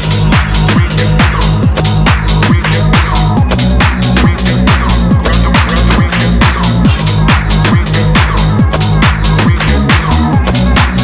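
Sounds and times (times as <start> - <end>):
deep stepping bass line: 0.0 - 11.0
kick drum: 0.0 - 11.0.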